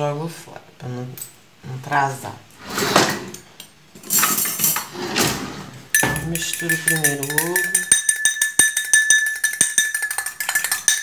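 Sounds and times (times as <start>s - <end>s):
dishes and cutlery clattering: 2.9s - 11.0s.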